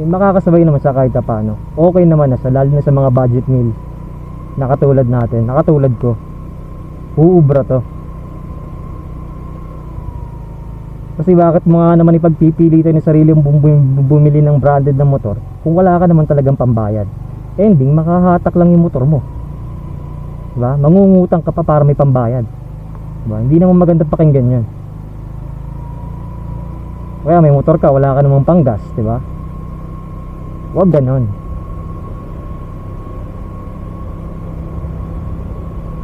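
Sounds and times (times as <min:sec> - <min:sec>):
road noise: 0:00.0 - 0:36.0
scooter engine running: 0:00.0 - 0:36.0
thin steady whine: 0:00.0 - 0:36.0.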